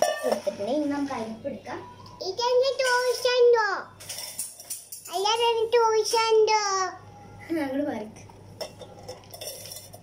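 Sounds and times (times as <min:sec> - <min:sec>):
metal pot clinking: 0:00.0 - 0:00.7, 0:04.0 - 0:05.2, 0:08.6 - 0:10.0.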